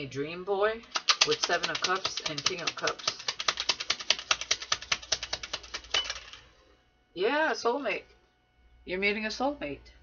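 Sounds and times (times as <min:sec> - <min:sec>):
cards being shuffled: 0:00.9 - 0:06.5.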